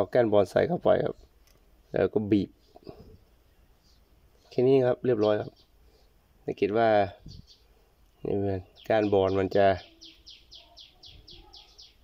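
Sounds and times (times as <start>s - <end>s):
bird chirping: 0.2s - 12.0s.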